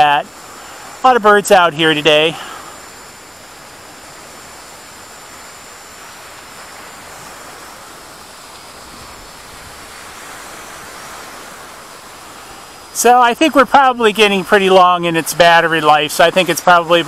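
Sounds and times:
faint high whine: 0:00.0 - 0:17.0
lake waves on shore: 0:00.0 - 0:17.0
wind: 0:00.0 - 0:17.0.

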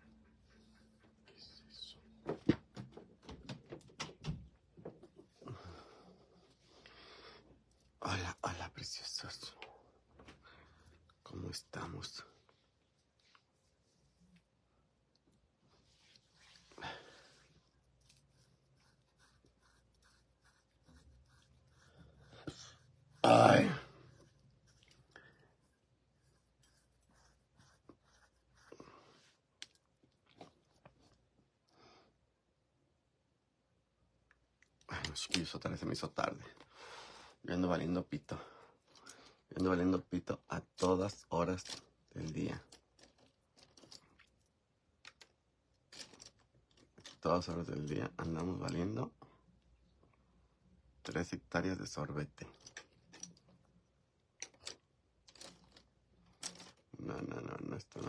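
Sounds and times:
fingers scratching skin: 0:17.8 - 0:28.9.

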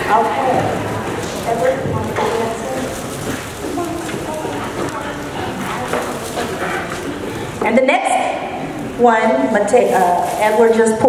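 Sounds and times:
woman speaking over microphone: 0:00.0 - 0:06.6, 0:07.6 - 0:11.0
indistinct chatter of many voices: 0:00.0 - 0:11.0.

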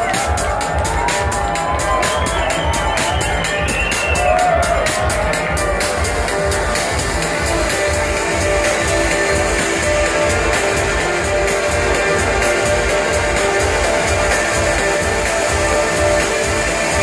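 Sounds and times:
kick drum beat: 0:00.0 - 0:17.0.

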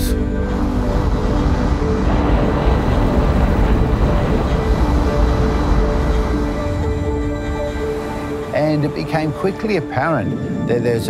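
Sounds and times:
wave breaking roar: 0:00.0 - 0:11.0.

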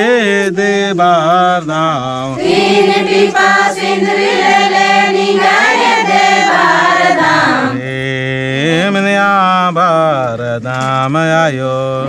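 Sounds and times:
man chanting: 0:00.0 - 0:02.4, 0:07.7 - 0:12.0
group chanting in unison: 0:02.3 - 0:08.3.

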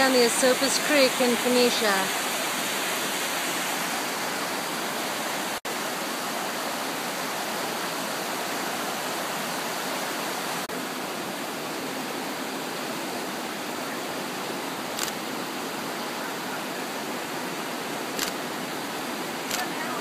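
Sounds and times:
creek water rushing: 0:00.0 - 0:20.0.

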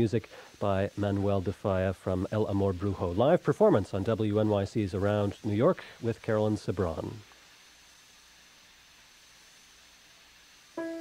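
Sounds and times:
old radio recording hiss: 0:00.0 - 0:11.0
thin high tone: 0:10.8 - 0:11.0.

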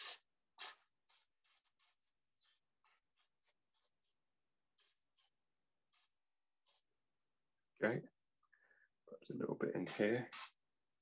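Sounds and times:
spray bottle hissing: 0:00.0 - 0:04.1, 0:09.9 - 0:10.6.

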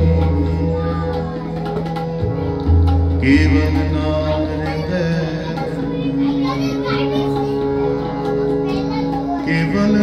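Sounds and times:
children chattering: 0:00.0 - 0:10.0
harmonium chord: 0:00.0 - 0:10.0.

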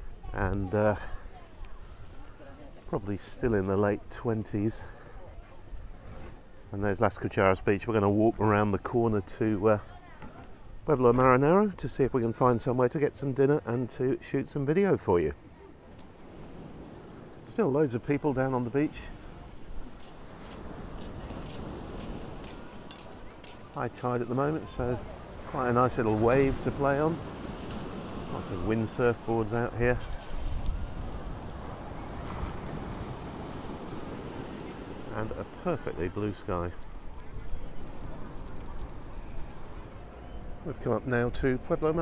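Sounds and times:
small waves breaking on beach: 0:15.4 - 0:40.0
wind on microphone: 0:25.0 - 0:35.6.

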